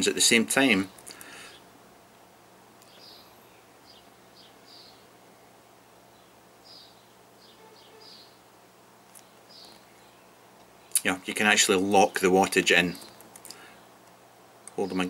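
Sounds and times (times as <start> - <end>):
distant birds chirping: 0.0 - 15.0.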